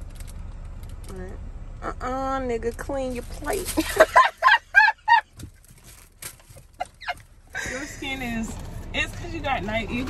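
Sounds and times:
woman laughing: 3.8s - 5.3s, 6.5s - 8.2s.

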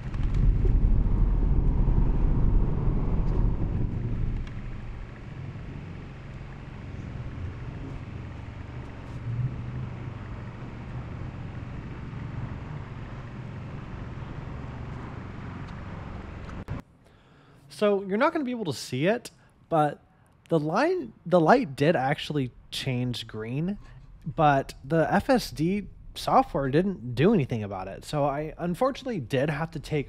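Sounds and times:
low rumble: 0.0s - 16.8s, 21.2s - 30.0s
road noise inside car: 0.0s - 16.8s.

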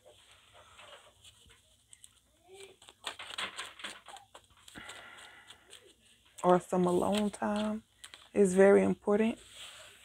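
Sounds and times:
playing cards being gathered: 0.1s - 10.0s.

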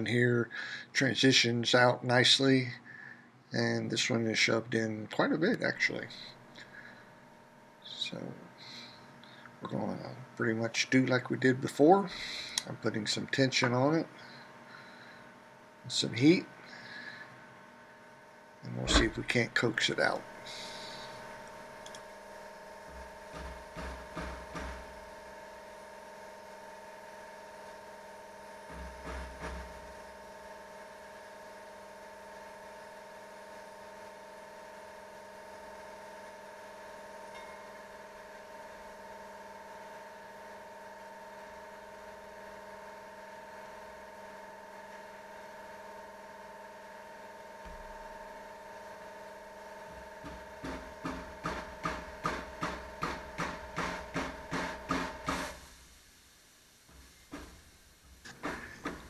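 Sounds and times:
steady hum with fixed tones: 0.0s - 59.0s.

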